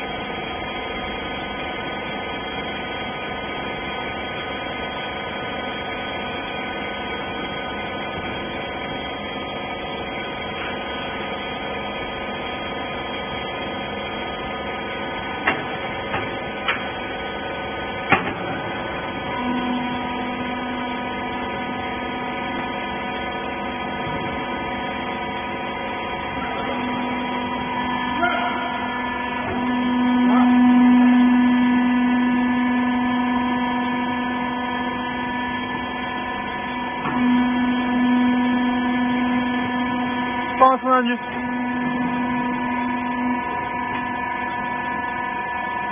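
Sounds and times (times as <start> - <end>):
machine whine: 0.0 - 45.9
motor and pump hum: 0.0 - 45.9.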